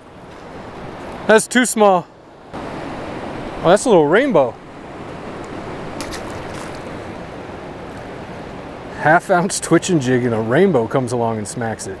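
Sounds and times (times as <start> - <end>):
river current rushing: 0.0 - 10.7.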